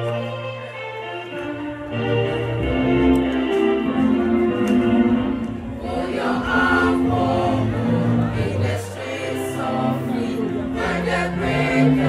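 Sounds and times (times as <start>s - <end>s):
choir singing sustained notes: 1.9s - 12.0s.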